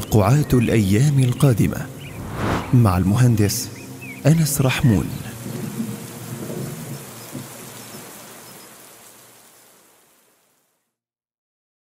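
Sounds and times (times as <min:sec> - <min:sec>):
steady rain: 0:03.9 - 0:10.8.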